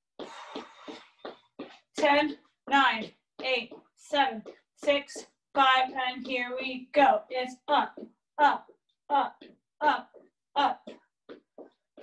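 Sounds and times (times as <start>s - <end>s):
woman breathing hard: 0.1s - 1.6s.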